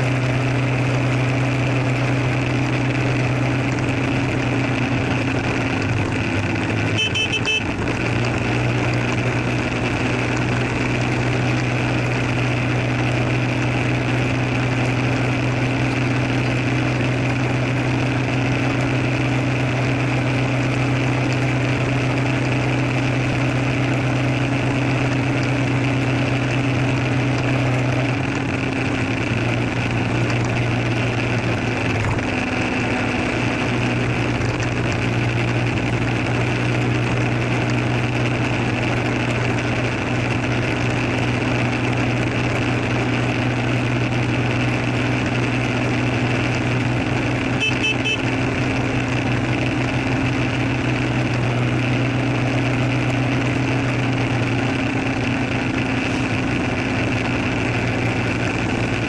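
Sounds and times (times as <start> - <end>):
motor scooter engine droning: 0.0 - 59.0.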